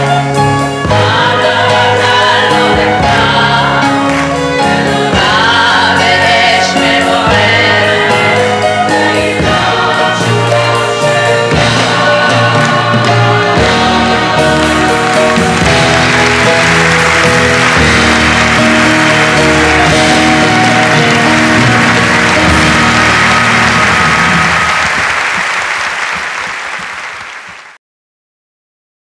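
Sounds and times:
sustained closing music chords: 0.8s - 27.6s
applause: 14.6s - 27.8s.

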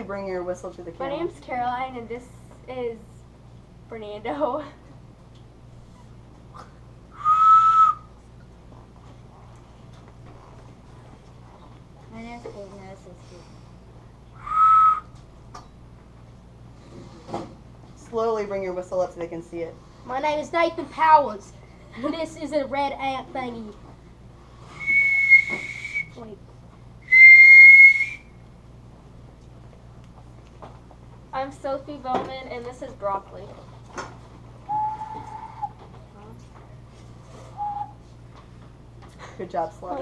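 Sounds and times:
whistle blown: 7.2s - 8.1s, 14.4s - 15.2s, 24.8s - 26.2s, 27.0s - 28.3s, 34.7s - 35.7s, 37.5s - 38.0s.

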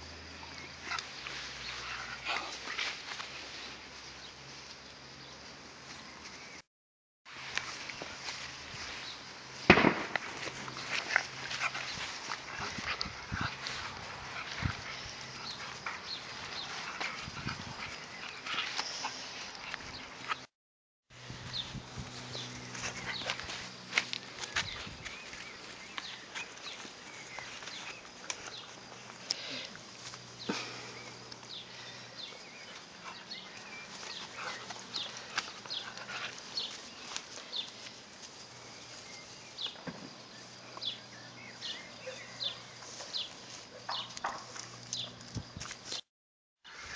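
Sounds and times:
puppies scuffling and sniffing: 10.2s - 20.5s, 21.2s - 46.0s.

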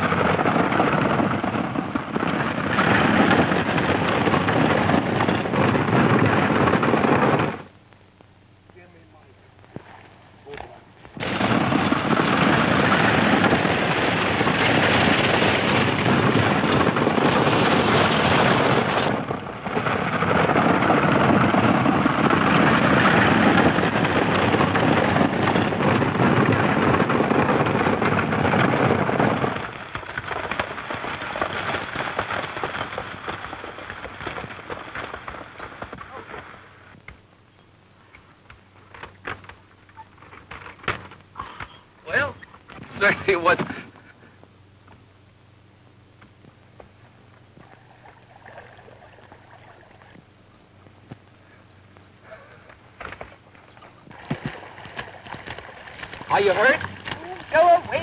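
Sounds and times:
coach wheels rattling: 0.0s - 7.7s, 10.5s - 37.0s, 52.3s - 58.0s
galloping hoofbeats: 0.0s - 7.7s, 9.6s - 37.2s, 52.2s - 58.0s.

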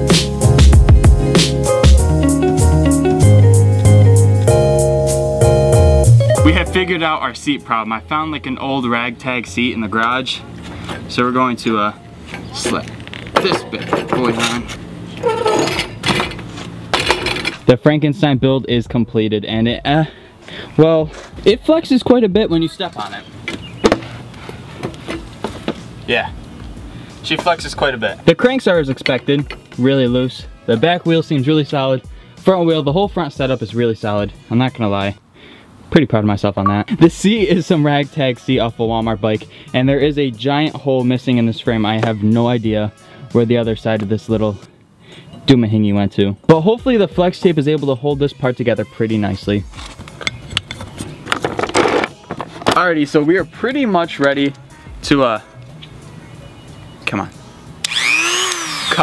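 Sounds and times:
handling clicks and scrapes: 12.3s - 17.6s, 49.7s - 52.8s
bike clicks and knocks: 23.0s - 24.2s, 24.8s - 25.8s
plastic case rattling scrape: 50.8s - 52.8s.

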